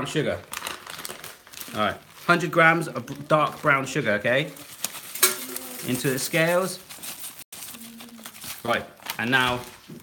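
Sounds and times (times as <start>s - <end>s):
plastic packet crinkling: 0.0s - 10.0s.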